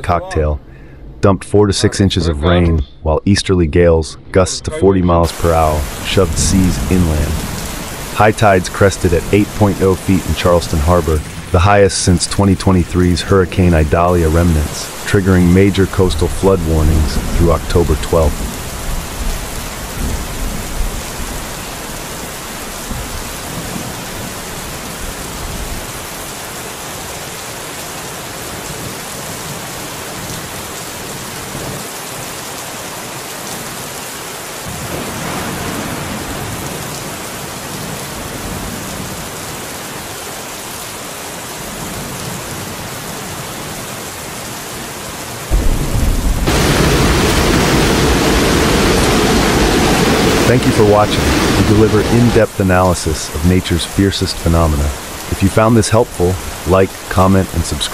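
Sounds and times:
floodwater torrent rushing: 3.7s - 57.9s
rain: 4.8s - 57.9s
deep rumble: 45.5s - 52.6s.

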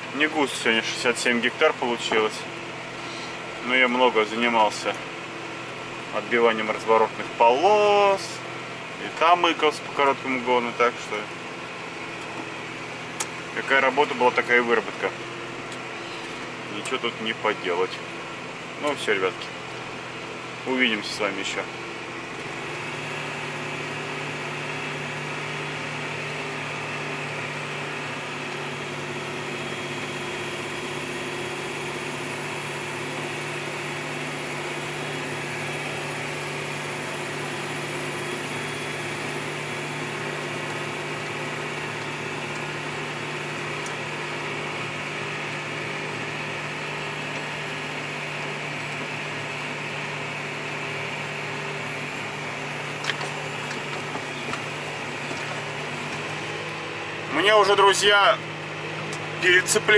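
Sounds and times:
tractor diesel engine humming: 0.0s - 59.9s.

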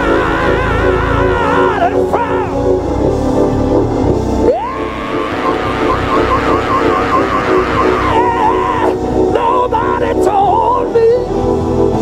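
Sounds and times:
live gospel band playing: 0.0s - 11.1s
high wavering lead line: 5.3s - 9.0s.

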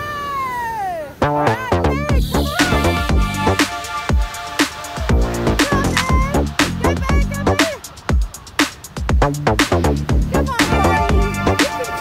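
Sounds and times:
background music: 1.2s - 12.0s.

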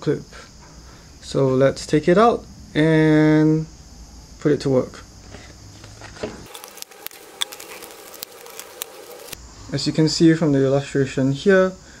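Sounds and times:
cardboard packaging crinkling: 6.4s - 9.4s.

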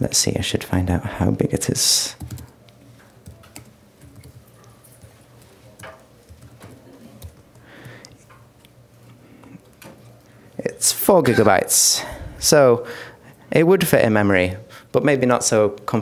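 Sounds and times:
low steady hum: 0.0s - 16.0s
computer keyboard keystrokes: 2.2s - 2.5s, 3.1s - 8.2s.

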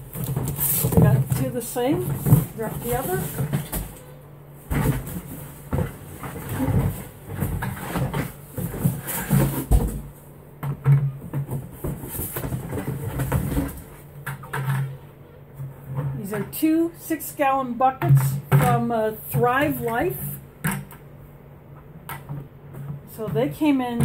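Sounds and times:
cardboard rustling: 0.0s - 10.2s, 11.4s - 14.1s
knocks and scrapes: 0.0s - 10.2s, 10.8s - 16.6s.

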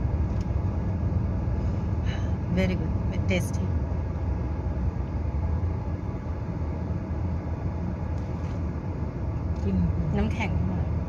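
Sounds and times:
car engine rumble from inside cabin: 0.0s - 11.0s.

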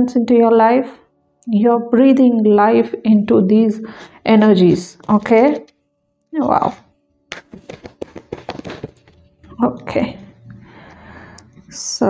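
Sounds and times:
cards being shuffled: 7.3s - 9.3s.

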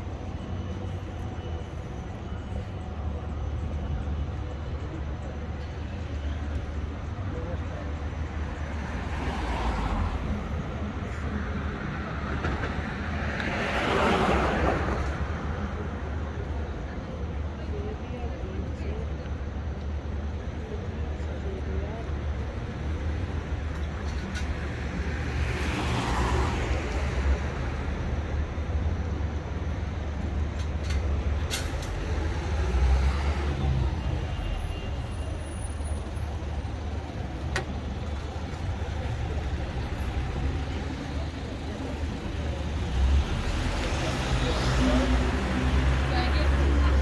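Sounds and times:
steady low traffic rumble: 0.0s - 47.0s
vehicles passing: 0.0s - 47.0s.

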